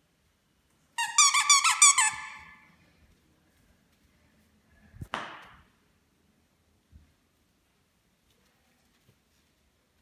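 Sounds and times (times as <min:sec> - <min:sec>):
squeaky toy squeaking: 0:01.0 - 0:02.6.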